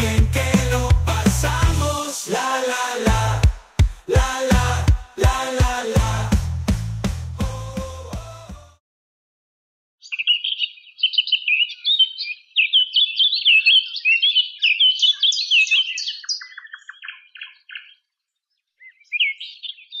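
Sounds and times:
songbird singing: 0:10.0 - 0:20.0.

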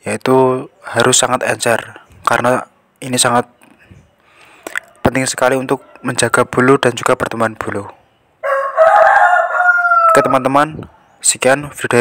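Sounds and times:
rooster crowing: 0:04.7 - 0:07.0, 0:08.4 - 0:10.6.

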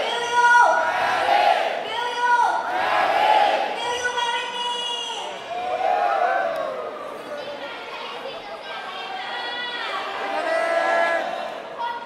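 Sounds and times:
crowd shouting a chant: 0:00.0 - 0:04.0, 0:09.2 - 0:12.0.

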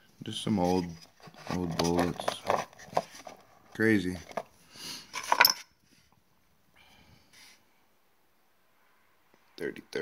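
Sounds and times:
shotgun shells clinking in wooden box: 0:05.2 - 0:05.7.

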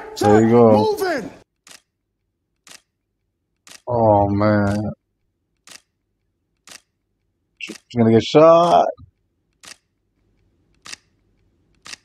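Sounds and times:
camera shutter clicking: 0:09.6 - 0:09.9, 0:10.8 - 0:11.1, 0:11.8 - 0:12.0.

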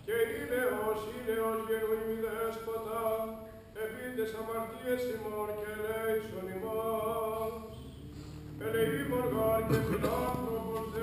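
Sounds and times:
male chanting in long notes: 0:00.0 - 0:11.0.

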